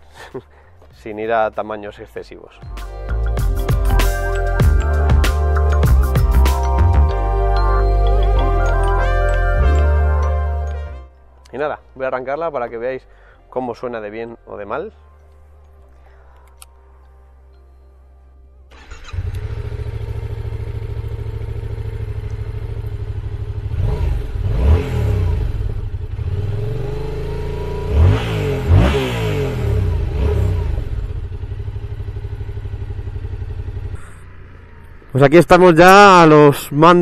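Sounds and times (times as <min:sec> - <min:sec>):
motorcycle engine starting and revving: 0:18.7 - 0:35.4.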